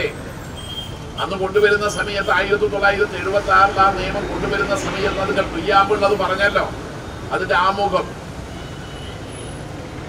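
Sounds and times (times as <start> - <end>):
road traffic rumble and hiss: 0.0 - 10.0.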